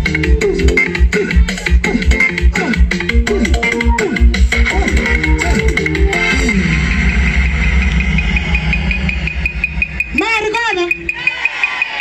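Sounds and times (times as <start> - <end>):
instrumental music with pulsing bass: 0.0 - 12.0.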